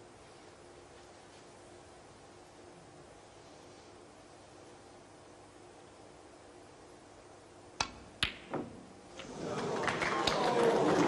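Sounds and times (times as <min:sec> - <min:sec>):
ball knocking pocket: 0:07.8 - 0:08.8
billiard balls clicking: 0:07.8 - 0:09.3.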